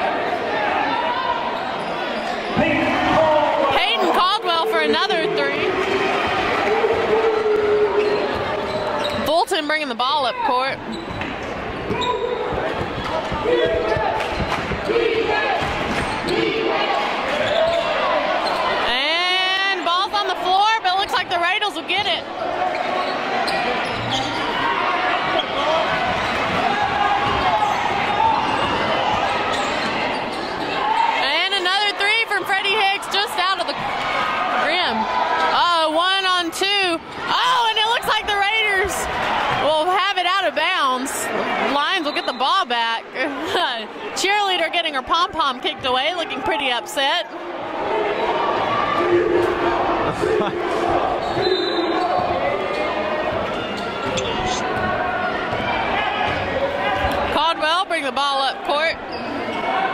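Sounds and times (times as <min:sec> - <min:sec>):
people shouting: 0:02.6 - 0:09.0, 0:11.9 - 0:21.6, 0:22.4 - 0:36.5, 0:37.2 - 0:40.0, 0:47.6 - 0:57.4
basketball bouncing on wooden floor: 0:11.0 - 0:14.9.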